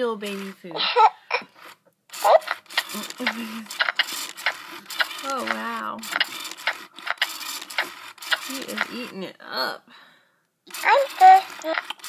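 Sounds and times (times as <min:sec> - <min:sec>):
electronic smacking and slurping: 0:01.6 - 0:09.3, 0:10.7 - 0:12.0.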